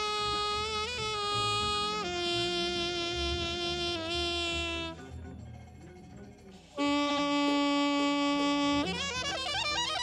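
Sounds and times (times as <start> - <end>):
wind instrument buzzing note: 0.0 - 5.0, 6.8 - 10.0
free jazz ensemble: 0.0 - 5.2, 6.5 - 10.0.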